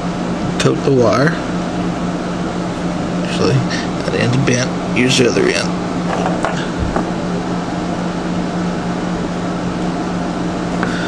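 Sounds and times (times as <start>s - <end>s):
room equipment hum and hiss: 0.0s - 11.0s.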